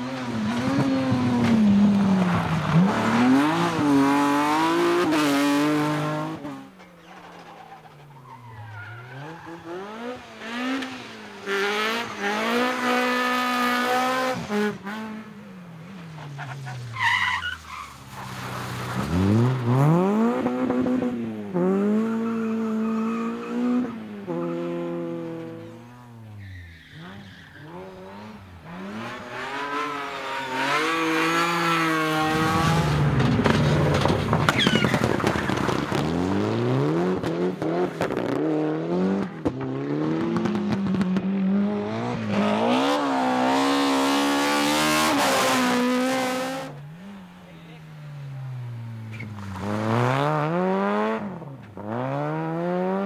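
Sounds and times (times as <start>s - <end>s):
rally car engines revving: 0.0s - 53.0s
car sliding on loose dust: 15.9s - 20.0s, 29.0s - 38.4s.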